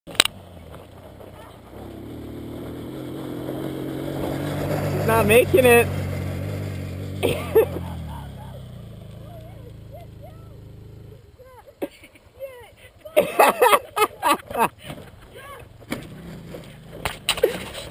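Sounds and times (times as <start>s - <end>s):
small quad engine running: 0.1s - 17.9s
low steady rumble: 0.2s - 14.4s
person shouting and laughing: 7.2s - 10.7s, 11.5s - 15.7s.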